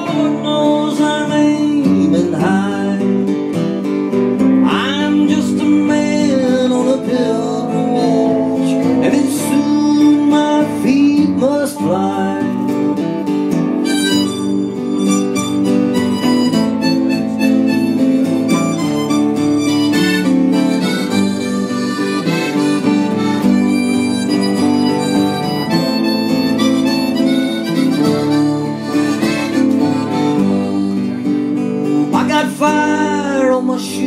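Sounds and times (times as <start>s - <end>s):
strummed acoustic guitar: 0.0s - 34.0s
harmonica playing: 5.9s - 32.4s
mandolin: 6.3s - 32.3s.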